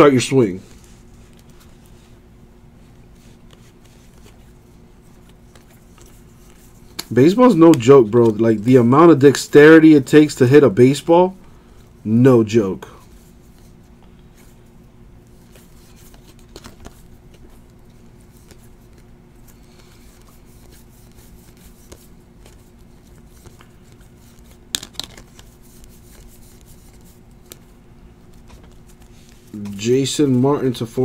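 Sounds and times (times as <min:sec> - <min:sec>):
steady low hum: 0:00.0 - 0:31.0
trading cards flipped by hand: 0:05.1 - 0:08.4, 0:15.3 - 0:27.7.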